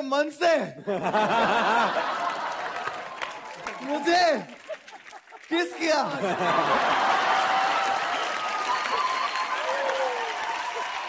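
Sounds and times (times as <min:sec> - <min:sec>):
audience applauding: 0:01.6 - 0:11.0.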